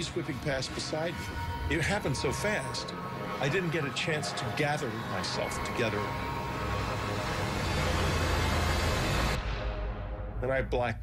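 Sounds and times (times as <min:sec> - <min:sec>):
deep low drone: 0:00.3 - 0:10.7.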